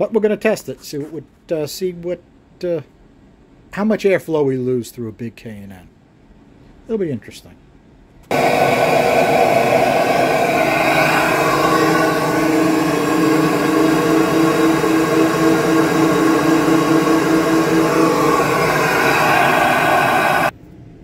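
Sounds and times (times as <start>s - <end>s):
blower rushing air: 8.3s - 20.5s
steady low pulsing tone: 8.3s - 20.5s.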